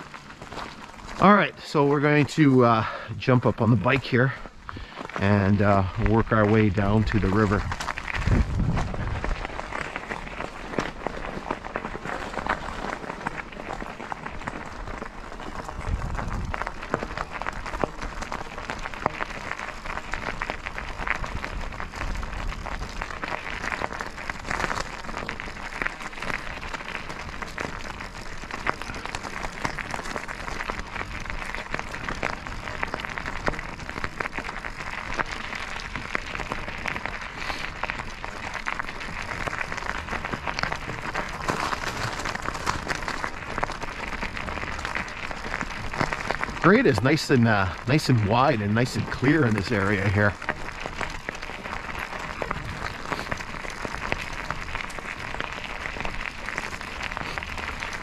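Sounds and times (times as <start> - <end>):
bicycle tyres crunching gravel: 0.0 - 58.0.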